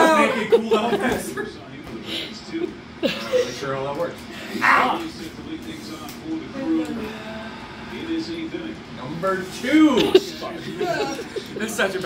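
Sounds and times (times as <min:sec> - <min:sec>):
quiet background talk: 0:00.0 - 0:12.0.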